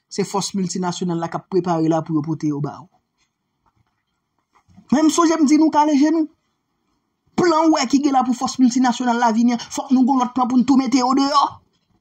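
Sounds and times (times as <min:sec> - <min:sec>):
man talking: 0:00.1 - 0:02.9, 0:04.9 - 0:06.4, 0:07.4 - 0:11.7.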